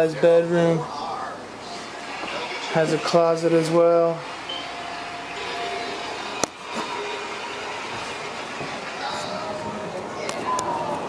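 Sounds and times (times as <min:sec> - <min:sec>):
room background noise: 0:00.0 - 0:11.0.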